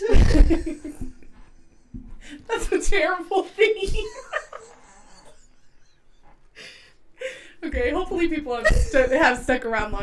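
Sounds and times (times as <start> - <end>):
women laughing stifled: 0.0 - 1.9, 4.0 - 6.2.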